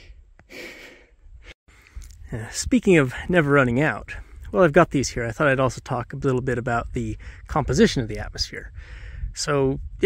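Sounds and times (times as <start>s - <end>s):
man drawing a breath: 0.1s - 2.1s, 8.8s - 9.3s
wind rumble on microphone: 1.2s - 10.0s.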